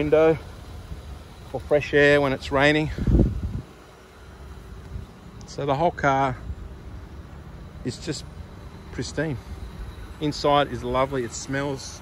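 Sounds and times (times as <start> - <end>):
low steady rumble: 0.0 - 12.0
wind buffeting microphone: 2.9 - 3.8.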